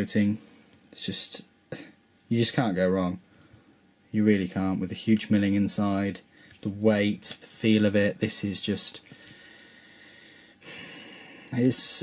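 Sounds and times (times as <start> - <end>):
faint room hiss: 0.0 - 12.0
person breathing through nose: 9.1 - 11.6.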